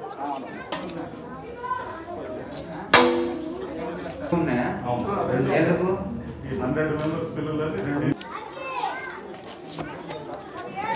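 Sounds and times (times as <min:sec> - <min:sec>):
voices chattering: 0:00.0 - 0:10.9.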